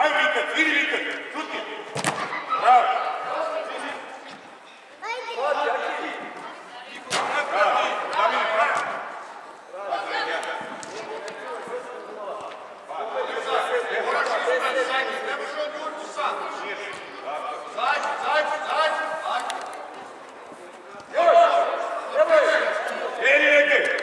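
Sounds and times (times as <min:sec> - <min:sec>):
voices calling out in hall: 0:00.0 - 0:24.0.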